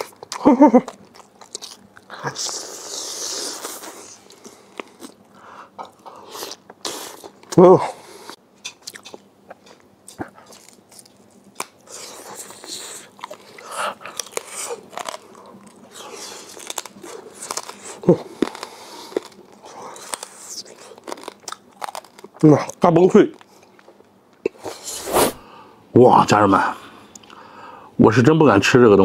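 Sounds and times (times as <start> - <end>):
man chewing crunchy food: 0.0 - 24.9.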